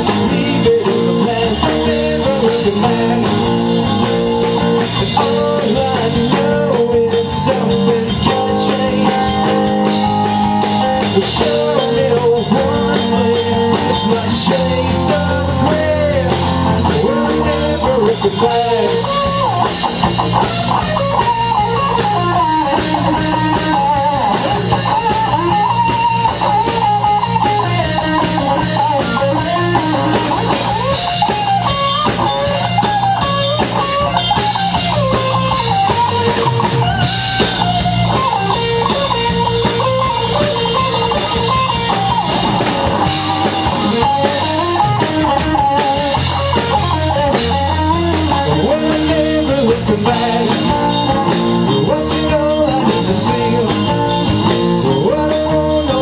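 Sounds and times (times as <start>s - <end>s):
bass guitar: 0.0s - 56.0s
drum kit: 0.0s - 56.0s
electric guitar lead: 0.0s - 56.0s.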